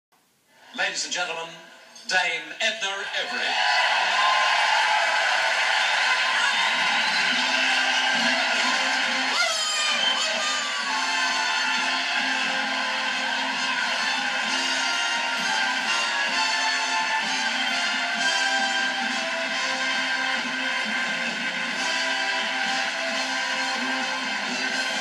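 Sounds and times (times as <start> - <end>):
audience applause: 3.2 - 25.0
band playing entrance music: 6.6 - 25.0.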